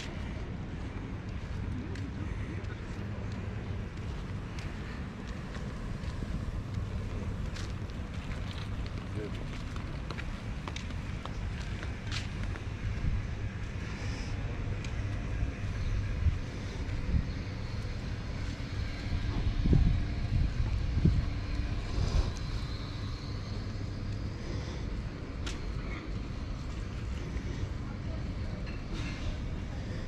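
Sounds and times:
wind buffeting microphone: 0:03.0 - 0:25.4.

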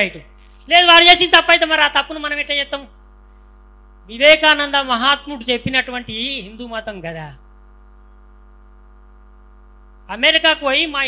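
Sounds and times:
electrical hum from sound system: 0:00.0 - 0:11.0.

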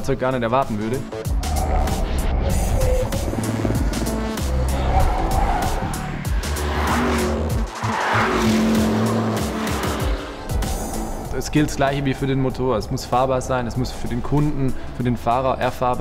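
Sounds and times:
background music: 0:00.0 - 0:16.0
car engine running hard: 0:01.2 - 0:15.4.

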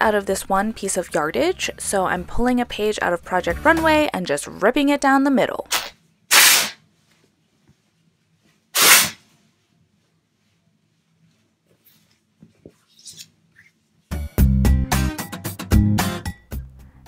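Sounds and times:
fabric ripping: 0:05.7 - 0:06.8, 0:08.8 - 0:09.3
cloth rustling: 0:06.8 - 0:14.1.

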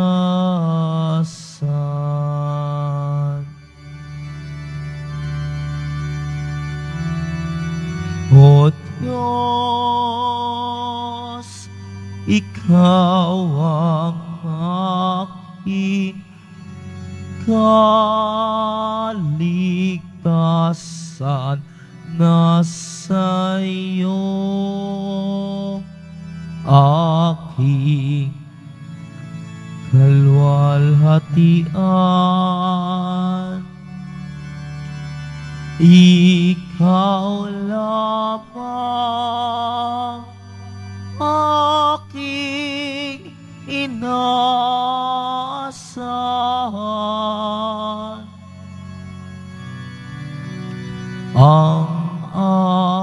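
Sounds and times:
person singing with vibrato: 0:00.0 - 0:03.6, 0:08.0 - 0:28.8, 0:29.8 - 0:34.3, 0:35.8 - 0:48.8, 0:51.3 - 0:53.0
held organ chords: 0:00.0 - 0:53.0.

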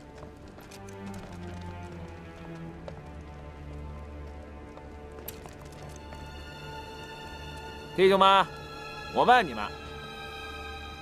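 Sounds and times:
faint footsteps: 0:00.0 - 0:08.0.

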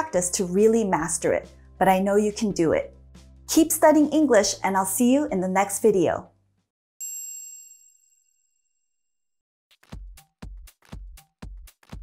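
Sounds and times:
bell-like chime: 0:07.0 - 0:08.8.

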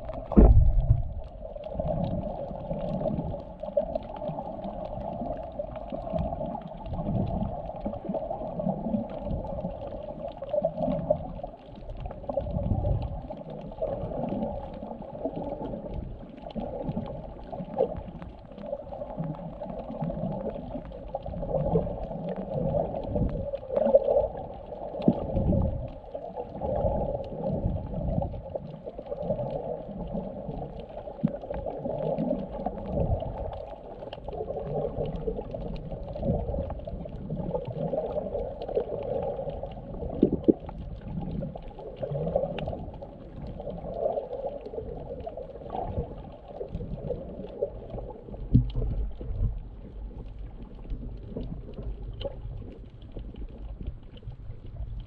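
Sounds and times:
steady dull hum: 0:00.0 - 0:01.6.

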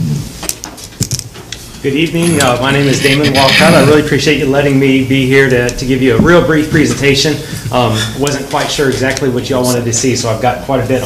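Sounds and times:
man speaking: 0:01.8 - 0:11.0.

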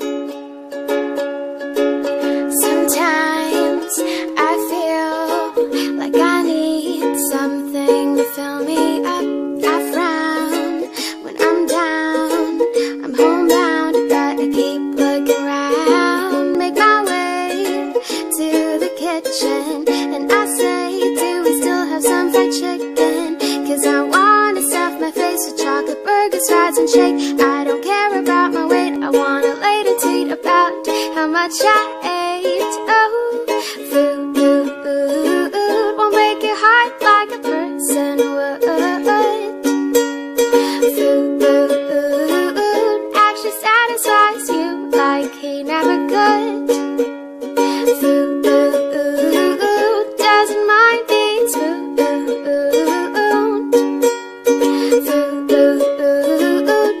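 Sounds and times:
plucked string instrument tune: 0:00.0 - 0:57.0.

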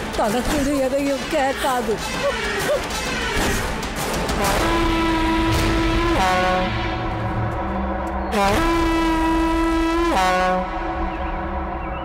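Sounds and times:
eerie background music drone: 0:00.0 - 0:12.0.

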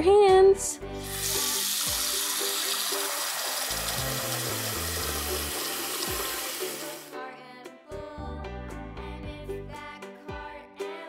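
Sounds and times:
children's music: 0:00.0 - 0:11.0
water running from sink tap: 0:01.0 - 0:07.1.

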